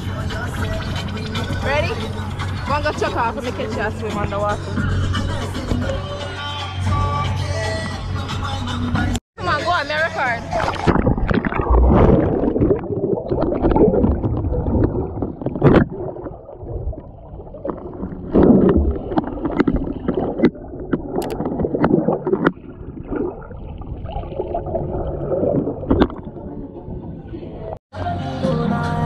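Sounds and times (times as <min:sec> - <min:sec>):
underwater churning and bubbling: 0:10.5 - 0:27.8.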